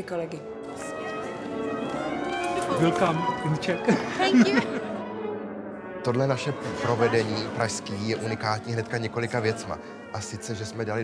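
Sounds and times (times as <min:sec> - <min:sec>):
orchestral strings: 0:00.0 - 0:11.0.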